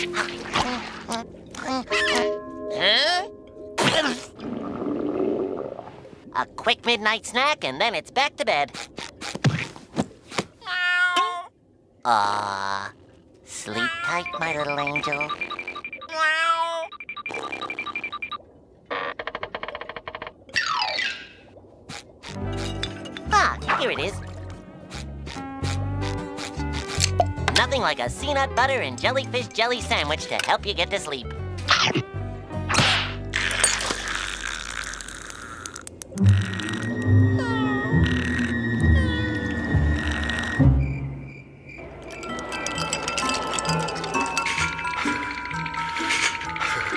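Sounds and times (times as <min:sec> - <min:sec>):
cartoon music: 0:00.0 - 0:04.3, 0:13.8 - 0:17.8, 0:36.2 - 0:40.8
meow-like falling calls: 0:37.0 - 0:39.6.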